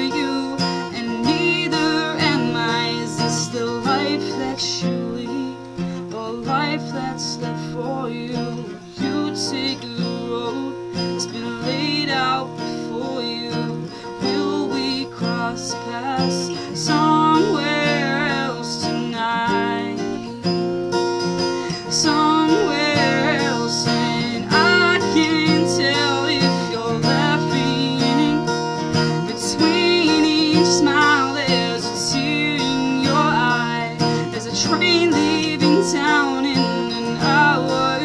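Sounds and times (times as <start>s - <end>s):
woman singing: 0.0s - 20.6s, 21.2s - 38.0s
acoustic guitar strumming: 0.0s - 38.0s.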